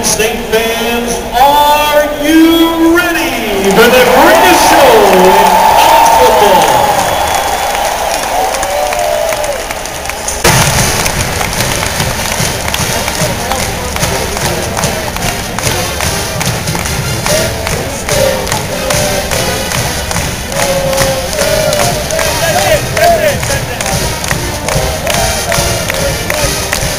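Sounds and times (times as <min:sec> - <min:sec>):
stadium crowd cheering: 0:02.9 - 0:26.9
marching band drum beat: 0:10.4 - 0:26.9.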